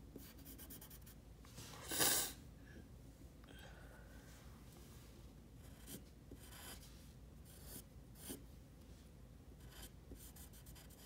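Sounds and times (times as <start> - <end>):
pencil scratching on paper: 0.2 - 1.2, 5.6 - 6.9, 7.5 - 8.4, 9.6 - 11.0.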